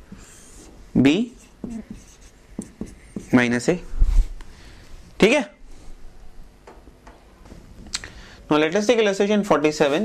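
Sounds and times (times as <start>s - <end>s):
marker squeaking on whiteboard: 0.1s - 3.5s
marker tip tapping board: 1.6s - 3.4s.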